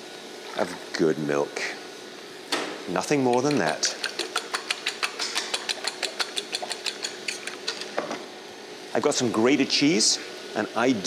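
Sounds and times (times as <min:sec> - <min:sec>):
fork whisking in ceramic bowl: 0:03.0 - 0:08.0.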